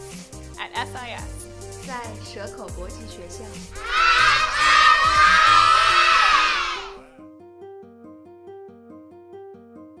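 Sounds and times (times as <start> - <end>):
children cheering and shouting: 3.8 - 7.0
music with plucked notes: 7.2 - 10.0.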